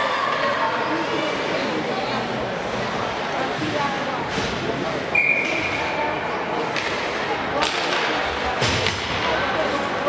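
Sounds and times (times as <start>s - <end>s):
many voices talking: 0.0s - 10.0s.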